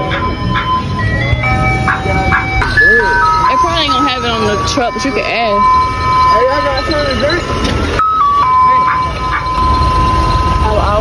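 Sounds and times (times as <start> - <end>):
ice cream truck jingle: 0.0 - 11.0.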